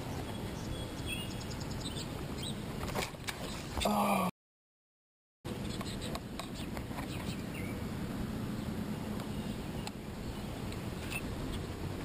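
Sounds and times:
boat engine hum and rumble: 5.5 - 12.0.

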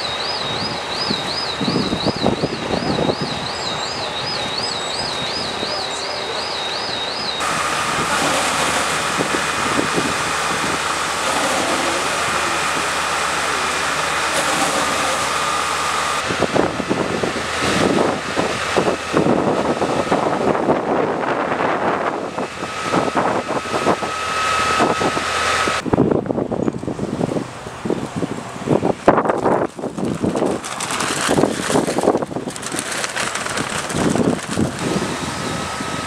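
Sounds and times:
warbling siren tone: 0.0 - 25.8
faint whine of pumps: 0.0 - 36.0
wind buffeting microphone: 0.4 - 5.9, 7.4 - 14.2, 15.2 - 36.0
steady rushing noise: 7.4 - 36.0.

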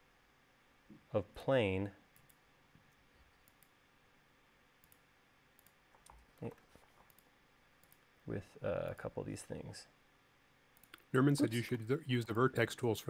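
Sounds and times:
computer mouse clicks: 3.4 - 3.8, 4.8 - 5.0, 5.6 - 8.0, 10.8 - 11.1.

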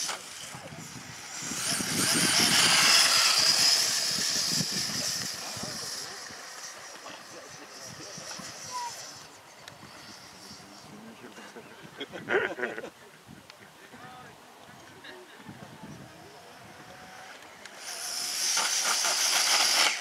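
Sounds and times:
model jet turbine rushing: 0.0 - 12.1, 15.5 - 20.0.

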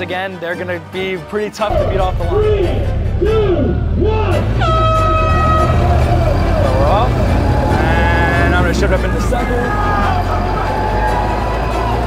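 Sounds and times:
car engine running: 1.9 - 12.0
wavering shout: 3.2 - 12.0.

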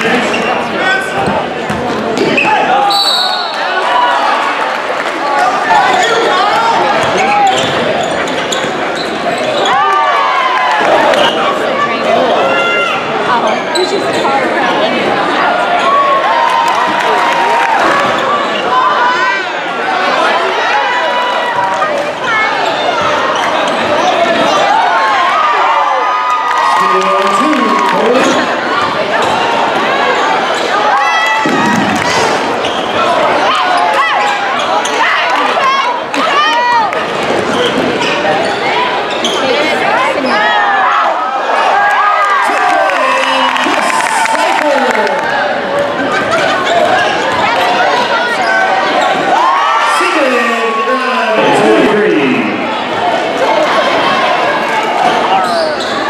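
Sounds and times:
crowd and player voices chattering: 0.0 - 56.0
sneakers squeaking on hardwood: 6.9 - 9.8, 31.4 - 33.1, 37.1 - 40.4, 55.0 - 56.0.

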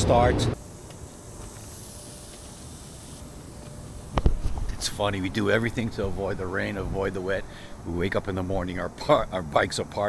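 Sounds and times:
sprinklers spraying water: 0.6 - 6.5.

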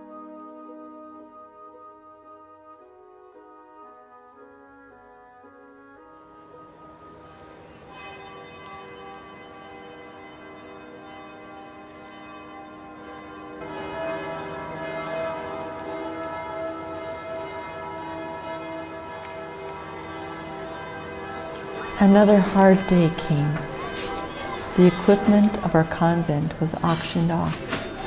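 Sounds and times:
church bells ringing: 0.0 - 28.0.

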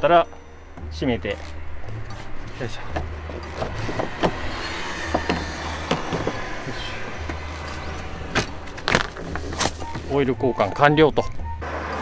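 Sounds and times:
steady low hum: 1.6 - 10.1
seat cover creaks and knocks: 1.9 - 10.2.

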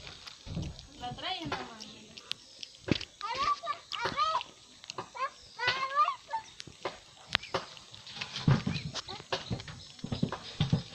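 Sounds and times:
monkey chewing and handling food: 0.0 - 10.9.

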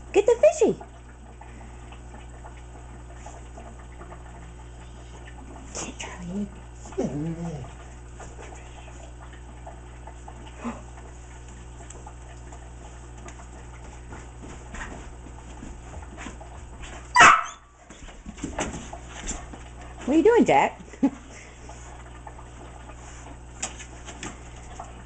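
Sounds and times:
dog whining: 6.2 - 7.8.

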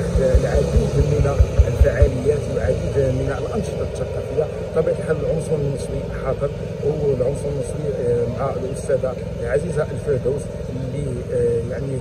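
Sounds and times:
man speaking into microphone: 0.0 - 12.0
steady low rumble: 0.0 - 12.0.

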